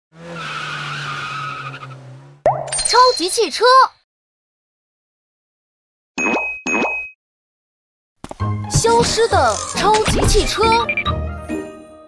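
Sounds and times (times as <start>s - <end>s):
engine hum: 0.1s - 2.4s
tyres screeching: 0.2s - 2.4s, 8.7s - 10.8s.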